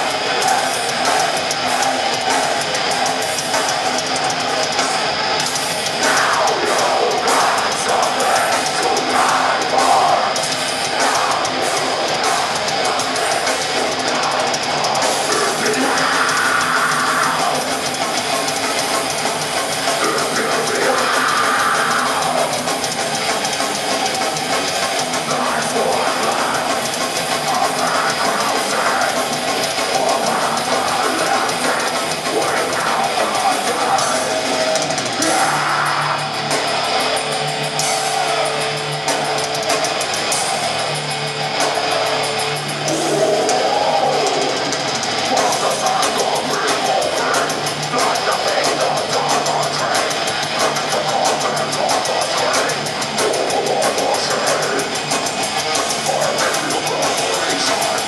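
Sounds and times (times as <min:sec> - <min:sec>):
distorted electric guitars: 0:00.0 - 0:58.0
drum kit with cymbals: 0:00.0 - 0:58.0.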